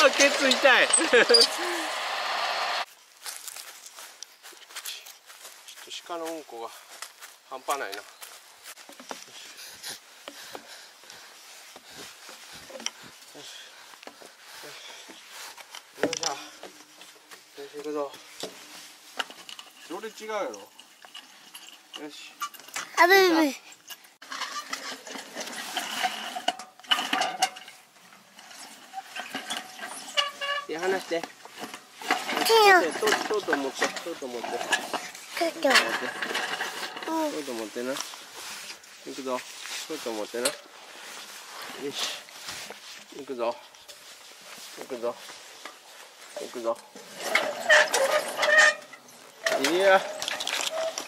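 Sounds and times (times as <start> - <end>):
footsteps on dry leaves: 0.0 - 16.0, 36.6 - 47.2
roller slide rattling: 32.0 - 37.1.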